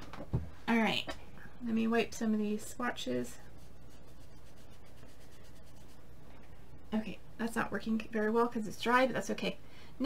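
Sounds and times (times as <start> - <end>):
dry wipe rubbing over skin: 3.4 - 6.1.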